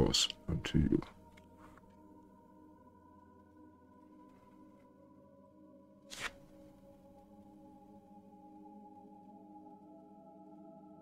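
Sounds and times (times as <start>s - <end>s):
faint steady drone: 0.0s - 11.0s.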